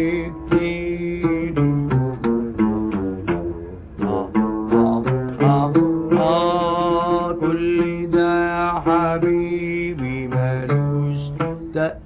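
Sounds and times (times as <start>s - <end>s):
man singing long melismatic notes: 0.0s - 12.0s
plucked oud: 0.0s - 12.0s.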